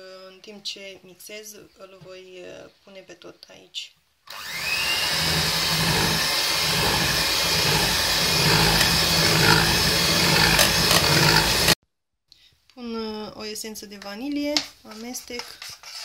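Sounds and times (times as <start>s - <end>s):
electric hand mixer whisking: 4.3s - 11.8s.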